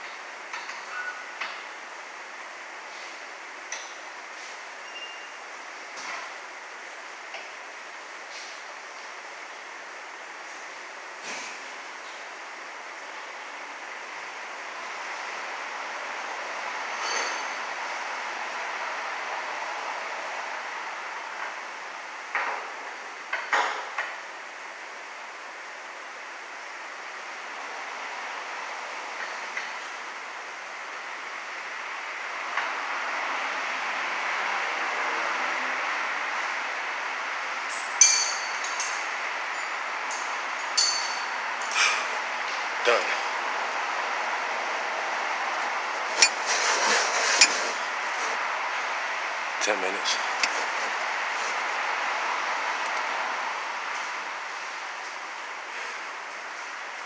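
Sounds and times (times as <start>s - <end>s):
steady workshop hiss: 0.0s - 57.0s
metal tools clinking: 37.7s - 41.3s, 46.2s - 46.5s.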